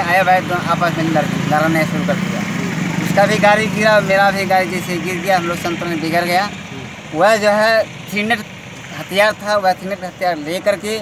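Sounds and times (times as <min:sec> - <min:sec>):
man speaking: 0:00.0 - 0:11.0
vehicle engine running: 0:00.0 - 0:11.0.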